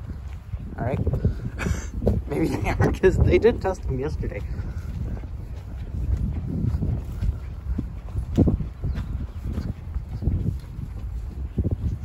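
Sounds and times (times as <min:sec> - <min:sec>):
footsteps on dirt and grass: 0:00.0 - 0:12.0
steady low rumble: 0:00.0 - 0:12.0.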